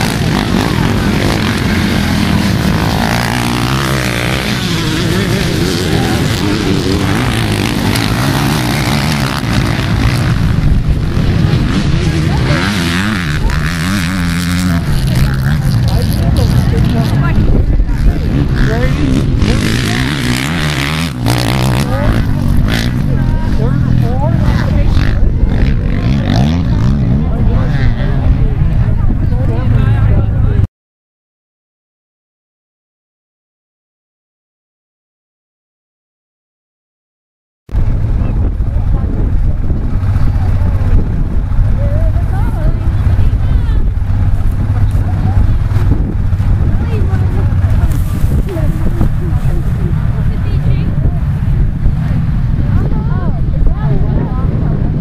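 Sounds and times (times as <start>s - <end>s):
wind buffeting microphone: 0.0s - 30.6s, 37.7s - 55.0s
dirt bike engines revving: 0.0s - 30.7s, 37.7s - 55.0s.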